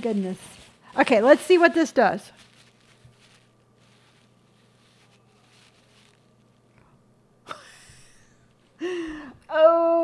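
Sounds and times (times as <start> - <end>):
faint soft rustles: 0.0 - 7.0
faint steady hum: 0.0 - 10.0
woman's breathy vocal sound: 8.8 - 9.5.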